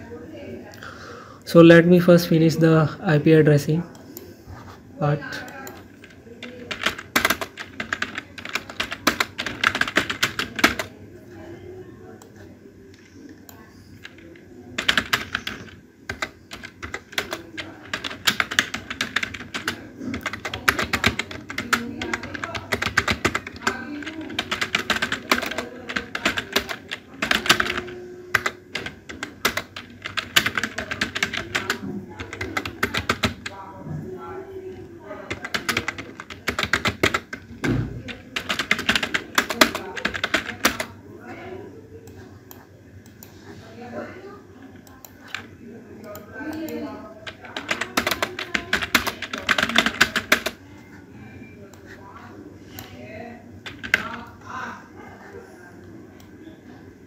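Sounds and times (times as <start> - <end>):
computer keyboard typing: 5.3 - 11.0, 12.2 - 33.6, 34.6 - 41.0, 44.6 - 50.6, 53.6 - 54.6.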